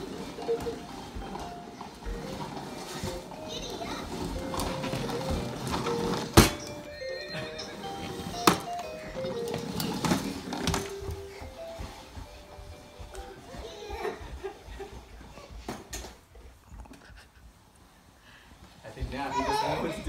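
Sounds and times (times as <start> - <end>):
electronic toy jingle: 6.0 - 10.1.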